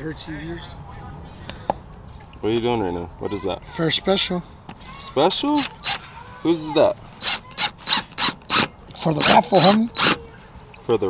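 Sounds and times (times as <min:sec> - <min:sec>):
cordless impact driver bursts: 0:05.6 - 0:06.0, 0:07.2 - 0:10.2.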